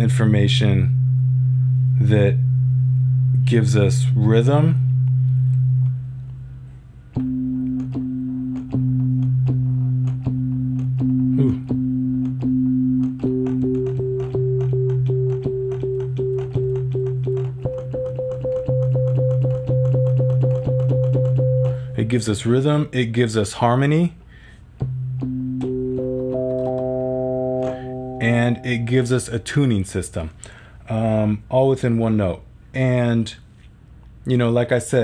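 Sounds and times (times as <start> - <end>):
low synthesizer sine tone: 0.0 - 22.2, 24.8 - 29.4
pulsing synthesizer harmonic notes: 24.9 - 29.2.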